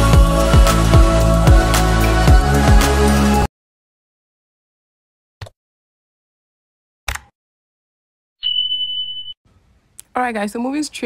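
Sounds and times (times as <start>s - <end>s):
high-pitched beep: 8.4s - 9.4s.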